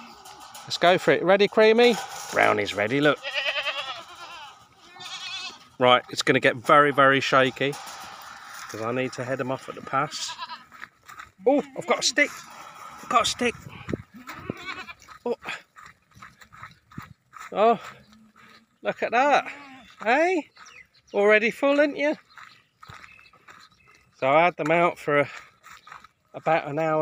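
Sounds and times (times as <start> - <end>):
goat bleating: 2.9 - 5.8, 9.7 - 10.8, 11.6 - 15.4, 18.1 - 20.1
footsteps scuffing on dirt: 7.4 - 27.0.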